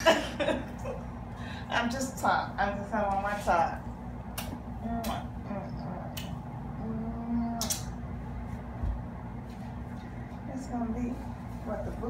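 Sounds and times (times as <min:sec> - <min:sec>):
woman's low moo-like hum: 0:06.8 - 0:07.8.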